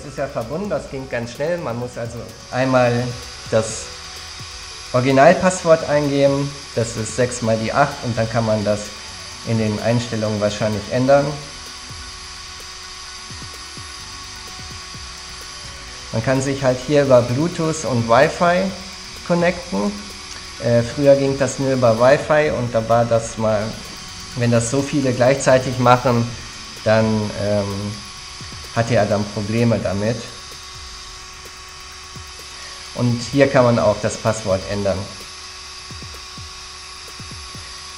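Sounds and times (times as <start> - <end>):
small cooling fan whirring: 0.0 - 37.9.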